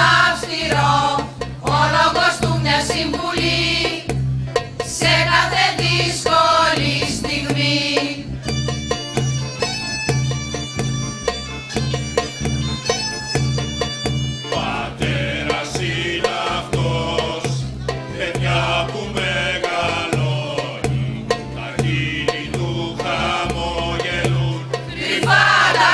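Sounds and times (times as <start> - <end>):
mixed choir singing: 0.0 - 4.2, 4.8 - 8.4, 14.5 - 25.9
instrumental accompaniment with bass beat: 0.0 - 25.9.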